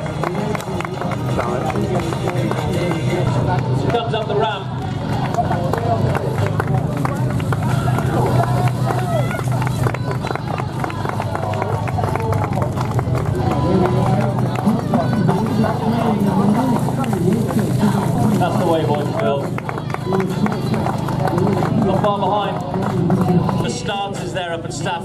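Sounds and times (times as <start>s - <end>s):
public-address commentator: 0.0s - 25.0s
spectators' voices: 0.0s - 25.0s
steady low hum: 0.0s - 25.0s.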